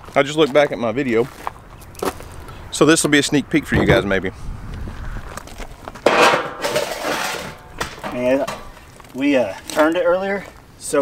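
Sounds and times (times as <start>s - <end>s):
metal shovel scraping gravel: 6.0s - 8.8s.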